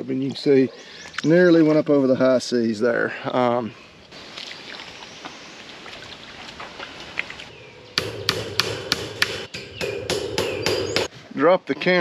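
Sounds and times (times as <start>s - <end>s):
hammer blows on staples: 8.0s - 11.1s.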